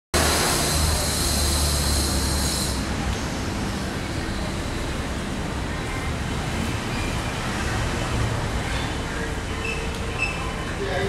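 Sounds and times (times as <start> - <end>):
low traffic rumble: 0.2 - 11.0.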